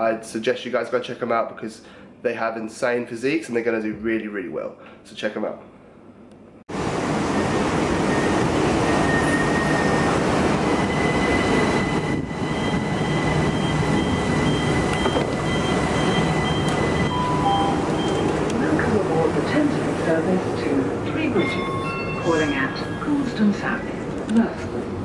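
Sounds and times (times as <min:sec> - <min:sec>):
train rumble and hiss: 0:06.7 - 0:25.0.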